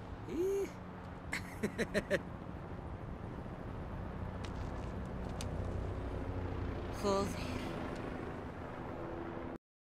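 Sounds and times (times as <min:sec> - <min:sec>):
street ambience rumble: 0:00.0 - 0:09.5.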